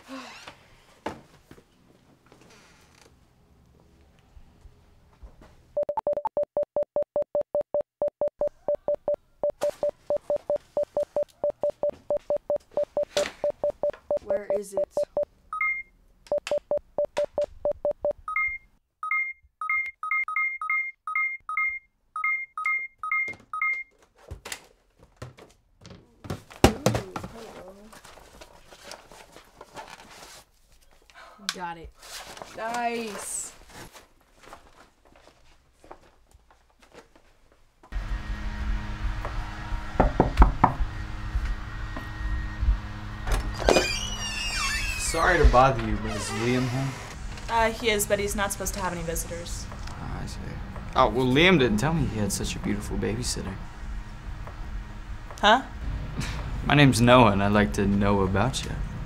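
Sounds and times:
two-tone keypad presses: 5.8 - 23.9
rapid warning beeps: 9.5 - 15.9, 18.0 - 23.9.

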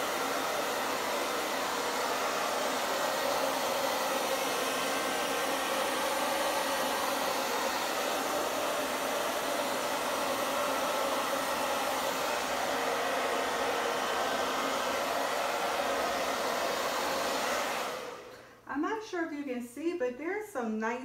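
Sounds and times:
hair dryer running: 0.0 - 18.6.

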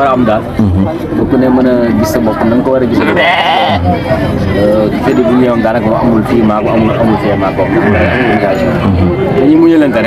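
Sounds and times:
sheep bleating: 3.0 - 3.9, 7.6 - 8.7.

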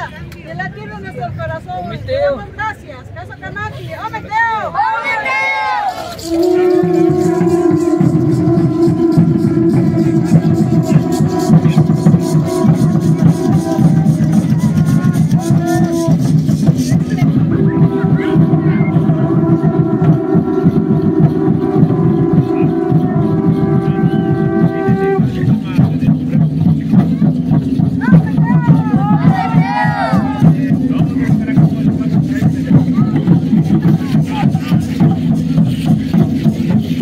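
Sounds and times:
crowd voices: 0.0 - 37.0
shaker and rattle clicks: 5.8 - 21.8
conch shell trumpets: 6.0 - 16.7, 17.3 - 25.5
fast rolling drum beat: 6.1 - 37.0.

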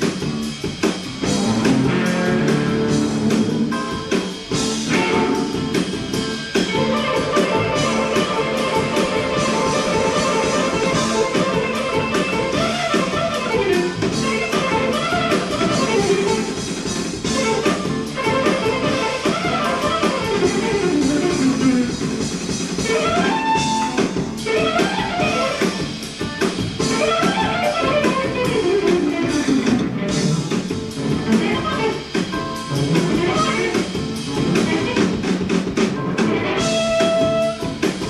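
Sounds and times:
drum kit: 0.0 - 38.0
electric guitar lead: 0.0 - 38.0
funk band playing: 0.0 - 38.0.

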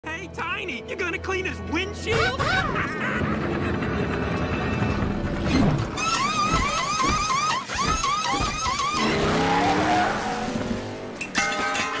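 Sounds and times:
soundtrack music: 0.0 - 5.8
tyres squealing: 5.5 - 10.6
race car engine: 8.7 - 11.4.

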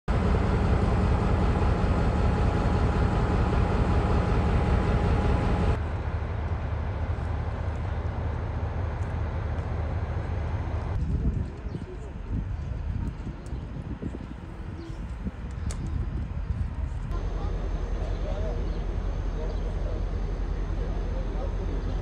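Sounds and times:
outdoor noise by a train: 0.1 - 22.0
faint voices: 16.7 - 22.0.

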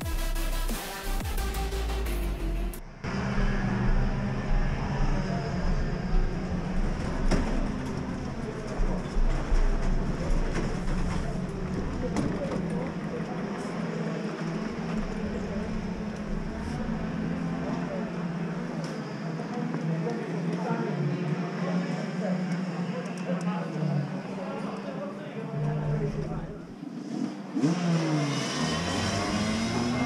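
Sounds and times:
electronic music: 0.0 - 3.0
kart engines droning and revving: 0.0 - 30.0.

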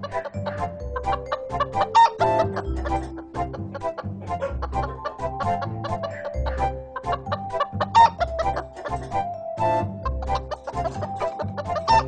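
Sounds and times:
cartoon hen clucking: 0.0 - 9.1, 10.0 - 12.0
music with repeating bass line: 0.1 - 12.0.

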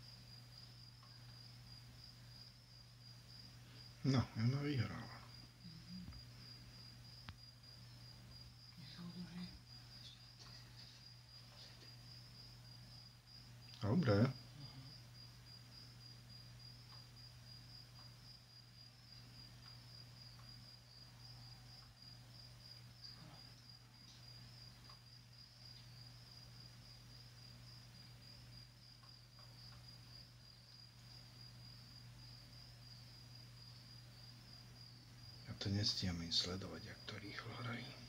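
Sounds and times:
faint high-pitched whine: 0.0 - 38.0
faint ticks: 16.8 - 17.1, 24.0 - 25.1, 28.9 - 29.9.

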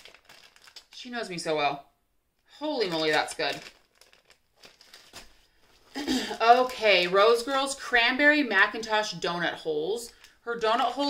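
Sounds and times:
plastic packaging rustling: 0.0 - 1.4, 2.6 - 7.8.

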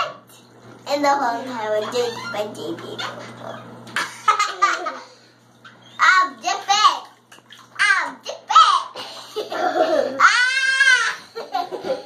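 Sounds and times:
laughter: 4.0 - 5.1, 11.3 - 12.0.

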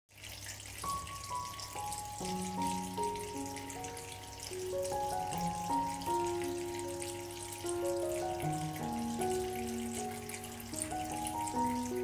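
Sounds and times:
water trickling over pebbles: 0.1 - 12.0.

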